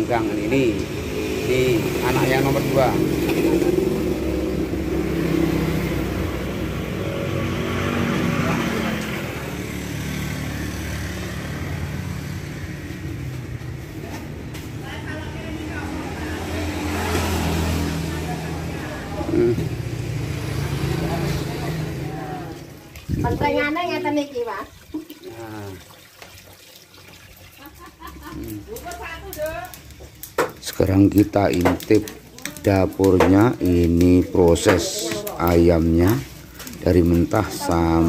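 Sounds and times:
vehicle engines humming: 0.0 - 24.6, 28.0 - 38.0.

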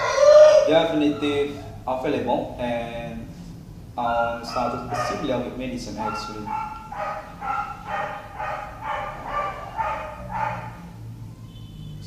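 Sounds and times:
dog barking: 4.2 - 11.0.

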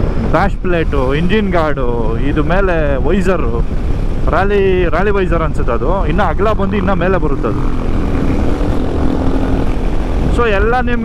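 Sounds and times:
wind noise on microphone: 0.0 - 11.0
motorcycle engine cruising: 4.9 - 11.0.

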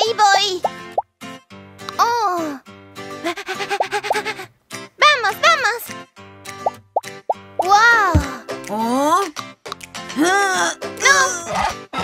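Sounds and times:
light children's music: 0.0 - 12.0.

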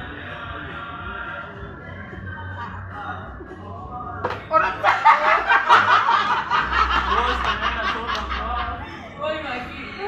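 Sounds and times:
group of people laughing: 4.6 - 9.1.

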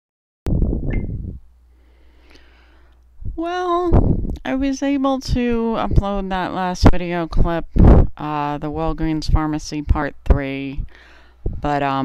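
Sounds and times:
faint low hum: 0.5 - 12.0
crackling microphone noise: 6.8 - 8.2.

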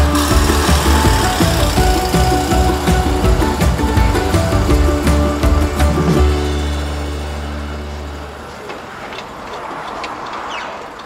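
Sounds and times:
closing music: 0.0 - 9.4
camper van engine driving off: 0.0 - 10.2
tyre noise: 0.0 - 11.0.

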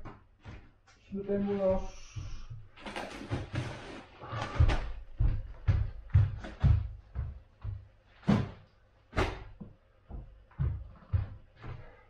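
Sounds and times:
footsteps on wooden floor: 0.0 - 8.6, 9.2 - 12.0
rustling of handled things: 0.1 - 7.3.

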